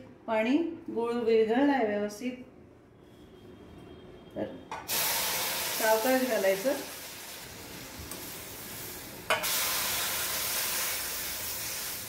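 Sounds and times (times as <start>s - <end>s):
liquid sizzling in hot pan: 4.9s - 12.0s.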